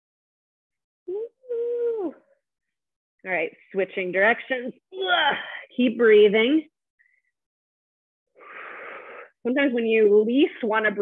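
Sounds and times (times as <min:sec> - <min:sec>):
woman straining vocal sound: 0:05.0 - 0:05.5.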